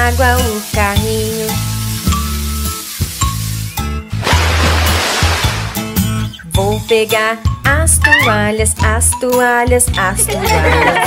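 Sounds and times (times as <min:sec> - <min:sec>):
children's song music: 0:00.0 - 0:11.0
water splashing onto plastic toy: 0:04.2 - 0:06.0.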